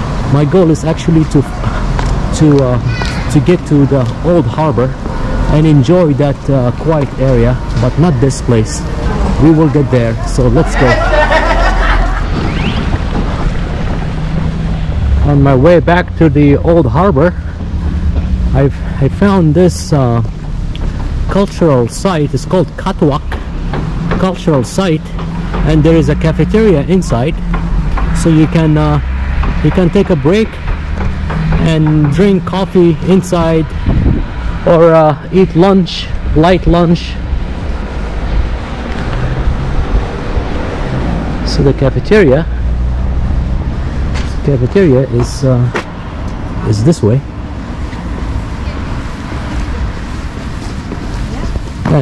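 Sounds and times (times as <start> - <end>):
outdoor street ambience: 0.0 - 52.0
wind buffeting microphone: 11.7 - 21.3, 27.3 - 34.7, 36.2 - 41.5, 47.3 - 52.0.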